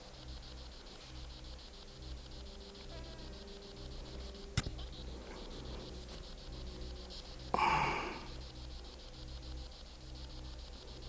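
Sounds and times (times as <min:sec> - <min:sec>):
faint low hum: 0:00.0 - 0:11.0
insect trilling: 0:00.0 - 0:11.0.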